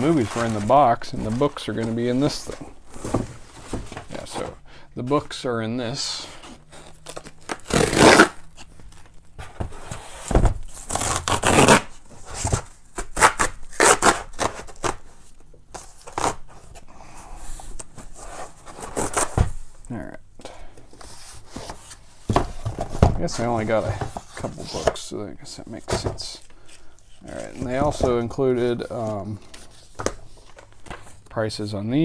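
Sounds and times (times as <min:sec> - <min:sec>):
tape and cardboard tearing: 0:06.7 - 0:09.1, 0:09.8 - 0:15.1, 0:15.7 - 0:16.7, 0:18.3 - 0:19.4.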